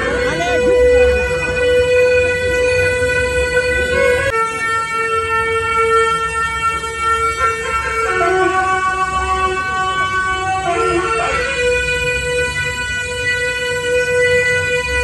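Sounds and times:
ceremonial horn long notes: 0:00.0 - 0:15.0.

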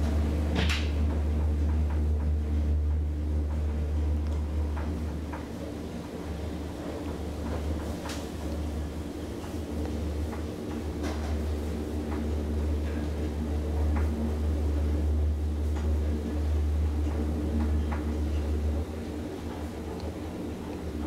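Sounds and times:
elevator travel rumble: 0:00.0 - 0:21.0.

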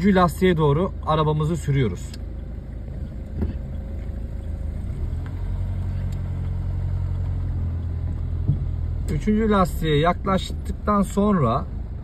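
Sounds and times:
car engine running: 0:00.0 - 0:12.0.

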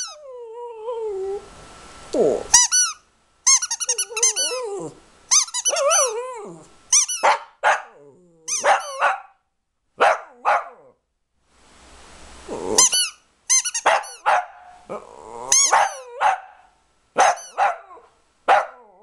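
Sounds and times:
dog yipping and barking: 0:00.0 - 0:00.2, 0:02.6 - 0:06.2, 0:06.9 - 0:09.4, 0:10.0 - 0:10.9, 0:12.8 - 0:14.8, 0:15.5 - 0:19.0
dog howling: 0:03.9 - 0:05.0, 0:05.6 - 0:06.7, 0:14.9 - 0:16.6.

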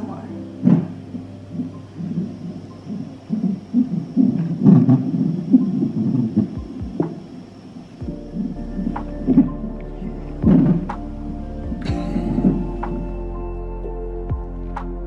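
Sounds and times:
doppler heartbeat whooshing pulse: 0:01.5 - 0:07.3, 0:08.0 - 0:13.2.

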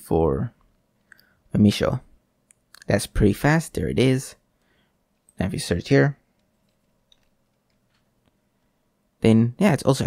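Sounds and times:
computer keyboard clicks: 0:06.3 - 0:08.1.

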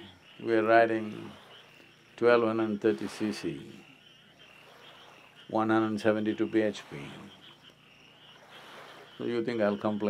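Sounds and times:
frogs calling: 0:00.0 - 0:10.0.

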